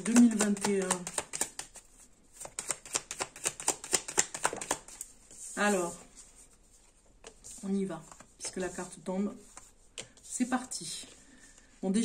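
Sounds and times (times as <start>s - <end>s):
playing cards being shuffled: 0.0s - 5.9s.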